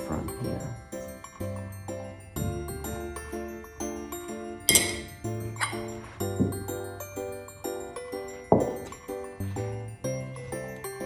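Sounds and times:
background music: 0:00.0 - 0:11.0
glasses clinking: 0:00.0 - 0:11.0.

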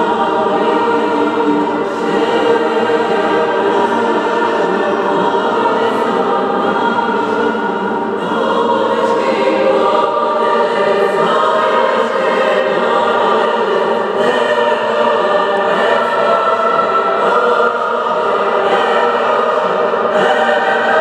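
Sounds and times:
choir singing sustained chords: 0:00.0 - 0:21.0.

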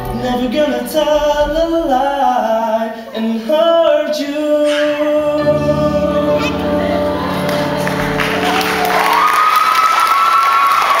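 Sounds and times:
audience applauding and cheering: 0:06.9 - 0:11.0
long high-pitched cheer: 0:07.2 - 0:11.0.

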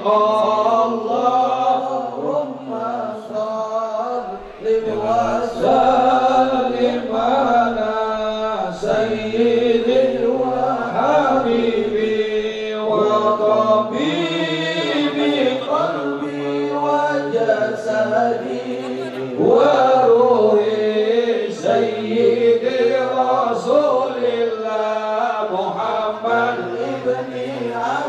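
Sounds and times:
voices chanting a melody: 0:00.0 - 0:28.0.

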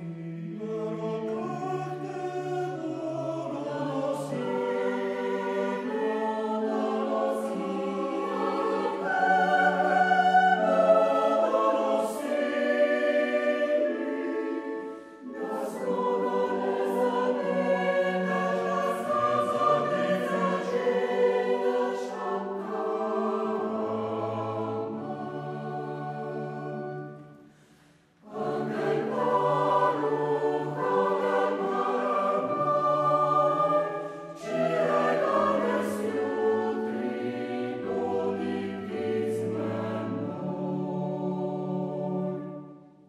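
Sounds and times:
choir singing: 0:00.0 - 0:43.0.

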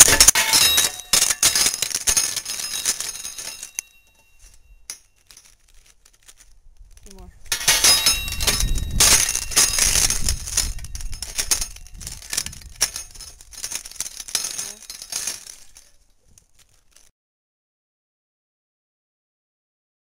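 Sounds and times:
nutcracker crushing walnut shells: 0:00.0 - 0:17.1.

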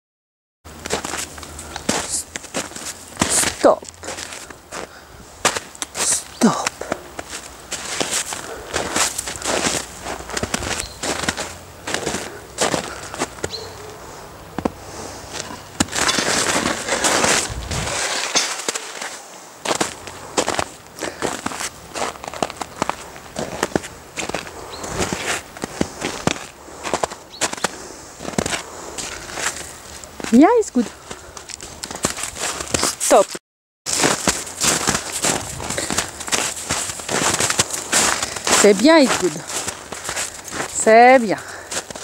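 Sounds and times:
footsteps through dry grass: 0:00.7 - 0:14.0, 0:14.6 - 0:33.2, 0:33.9 - 0:42.0
grass crackles: 0:00.7 - 0:42.0.

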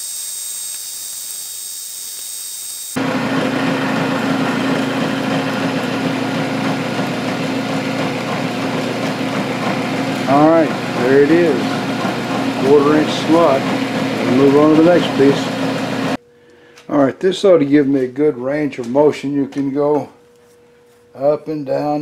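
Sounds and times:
milling machine cutting metal: 0:00.0 - 0:16.2.

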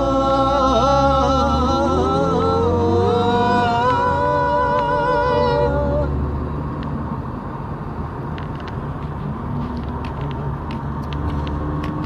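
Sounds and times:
vehicle engine and road noise: 0:00.0 - 0:12.0.

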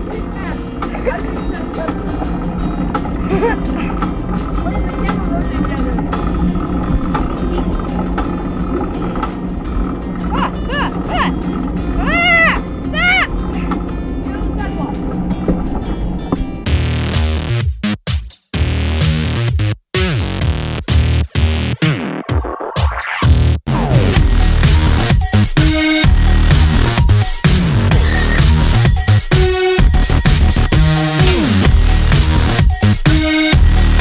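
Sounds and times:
wind buffeting: 0:00.0 - 0:16.7
road rattle: 0:00.0 - 0:17.6, 0:23.8 - 0:34.0.

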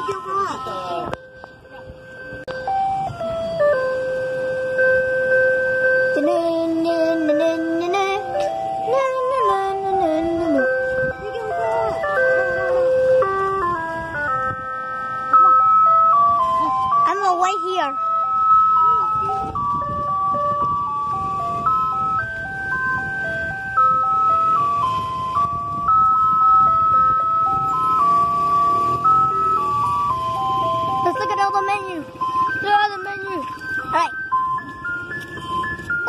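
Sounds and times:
ice cream truck chime jingle: 0:00.0 - 0:36.0.

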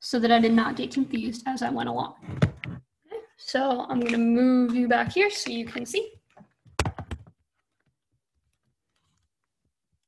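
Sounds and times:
device handling knocks: 0:06.7 - 0:07.3.

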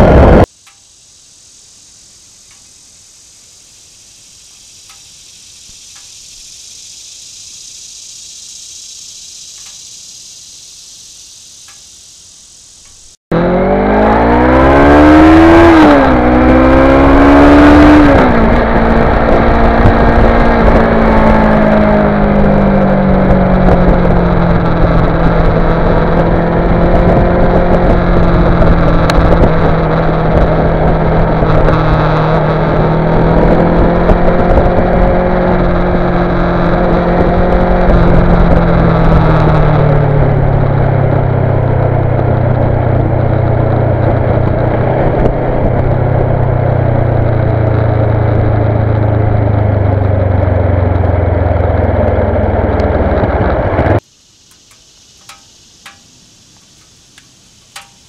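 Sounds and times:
wind rush: 0:00.0 - 0:00.5, 0:13.0 - 0:55.1
faint ticks: 0:00.5 - 0:01.0, 0:02.4 - 0:02.7, 0:04.5 - 0:06.6, 0:09.0 - 0:10.1, 0:11.6 - 0:12.0, 0:12.8 - 0:13.0, 0:54.4 - 0:58.0
insects chirring: 0:00.5 - 0:13.2, 0:53.8 - 0:58.0
motorcycle engine revving: 0:12.8 - 0:56.0, 0:56.8 - 0:58.0.

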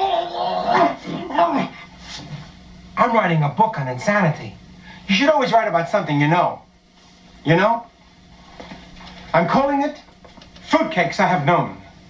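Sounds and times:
man yelping in pain: 0:00.0 - 0:01.7.

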